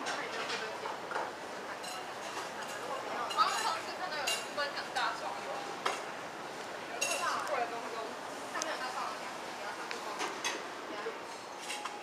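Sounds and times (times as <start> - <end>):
dishes and cutlery clinking: 0.0 - 5.1, 7.0 - 7.4
background chatter: 0.0 - 12.0.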